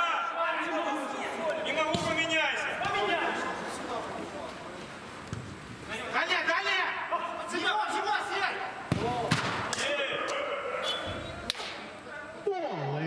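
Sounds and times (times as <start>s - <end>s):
men shouting: 0.0s - 3.8s, 6.2s - 11.3s
football being kicked: 1.9s - 2.2s, 8.9s - 9.7s.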